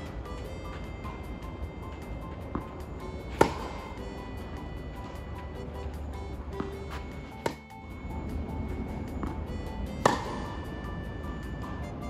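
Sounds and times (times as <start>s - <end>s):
background music: 0.0s - 12.0s
tennis racket hitting ball: 2.0s - 4.1s, 10.0s - 10.5s.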